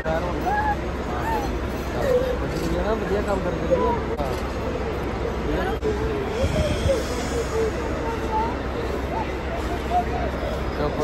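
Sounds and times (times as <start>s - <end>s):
low hum of airport hall: 0.0s - 11.0s.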